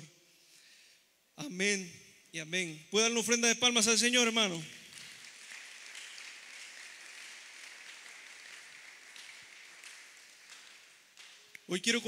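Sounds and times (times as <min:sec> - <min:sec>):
congregation applauding: 0:04.4 - 0:11.7.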